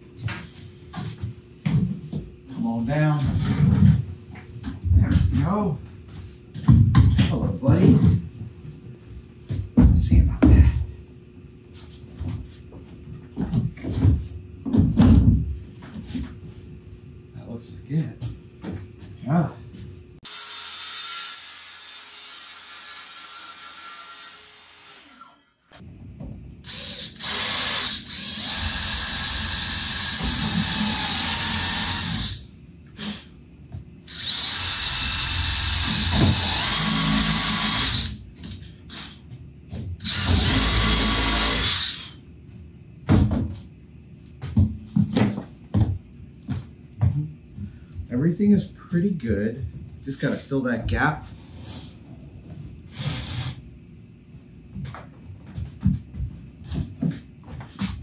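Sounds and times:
cordless drill running into wood: 0:26.7 - 0:32.4, 0:34.1 - 0:39.1, 0:40.0 - 0:42.1.

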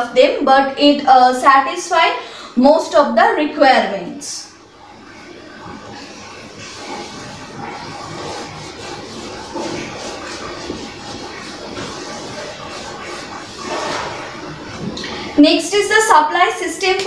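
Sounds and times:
duster rubbing on whiteboard: 0:05.2 - 0:15.4.

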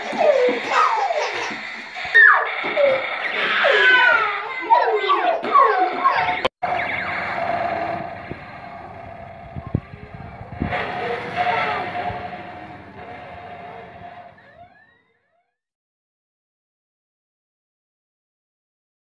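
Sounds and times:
children's voices: 0:00.0 - 0:06.5, 0:09.5 - 0:14.1
toy robot siren sound effect: 0:01.4 - 0:15.5.

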